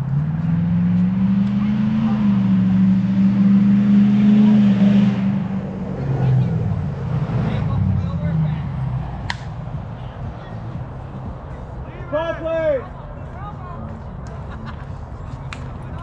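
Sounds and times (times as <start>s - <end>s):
vehicle engine revving: 0.0s - 11.4s.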